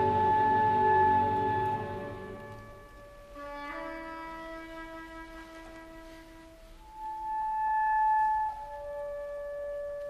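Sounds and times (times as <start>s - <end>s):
woodwind sustained notes: 0.0s - 10.0s.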